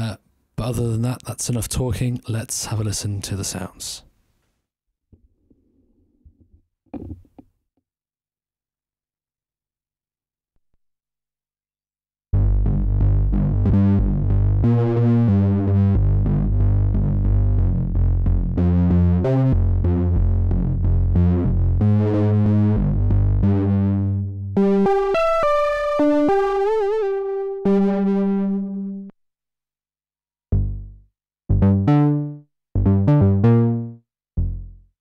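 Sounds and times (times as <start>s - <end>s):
synthesizer bass notes: 12.4s - 29.1s, 30.5s - 34.8s
synthesizer held notes with vibrato: 23.4s - 29.1s.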